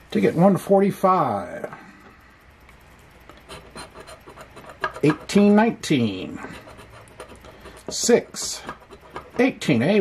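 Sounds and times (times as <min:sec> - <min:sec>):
coin scraping scratch-off ticket: 0:03.4 - 0:05.4, 0:06.4 - 0:09.6.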